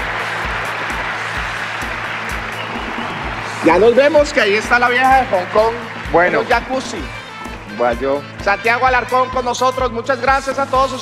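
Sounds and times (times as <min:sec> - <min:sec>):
audience applauding: 0:00.0 - 0:08.8
background music with bass beat: 0:00.0 - 0:11.0.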